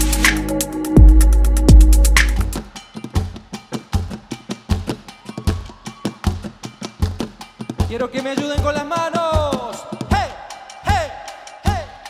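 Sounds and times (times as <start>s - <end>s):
drum kit playing a beat: 0.0s - 12.0s.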